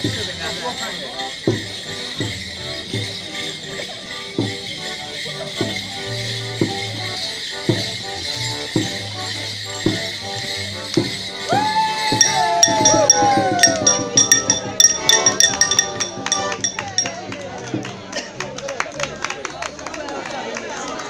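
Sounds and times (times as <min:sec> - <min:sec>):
bells jingling: 0:00.0 - 0:17.5
folk dance tune on melodeon: 0:00.0 - 0:17.6
wooden sticks clacking: 0:10.9 - 0:17.2
ringing metallic clang: 0:12.1 - 0:17.2.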